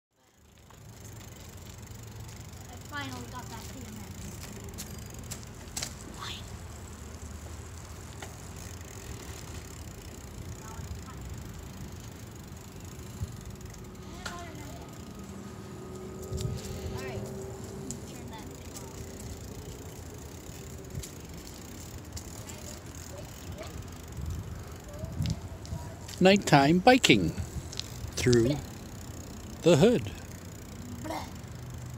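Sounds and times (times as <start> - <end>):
bicycle tyres rolling on pavement: 0.2 - 31.9
wind rumble on microphone: 16.3 - 17.0, 24.2 - 26.1.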